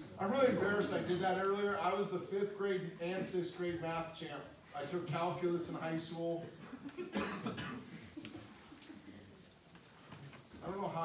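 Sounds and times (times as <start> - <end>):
faint room noise: 0.0 - 11.0
man coughing: 6.7 - 8.1.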